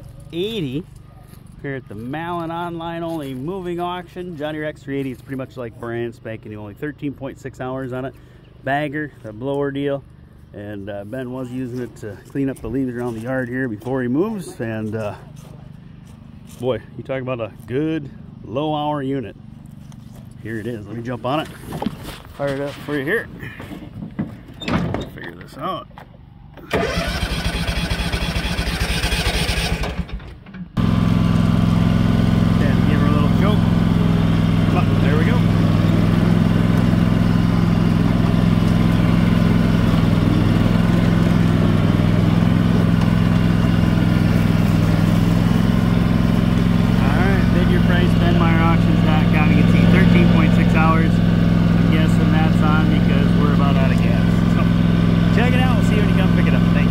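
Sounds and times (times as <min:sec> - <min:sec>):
mower engine running: 0:26.5 - 0:56.9
electric starter cranking: 0:26.6 - 0:32.6.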